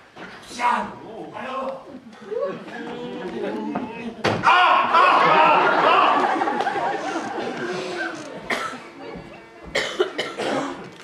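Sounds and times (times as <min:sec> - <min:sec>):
short coughs: 0:08.5 - 0:08.8, 0:09.8 - 0:10.9.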